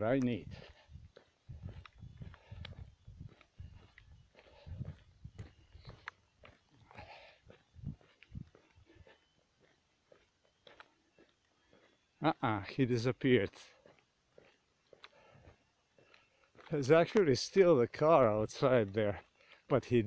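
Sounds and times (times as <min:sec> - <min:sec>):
faint footsteps: 0:00.0 - 0:20.0.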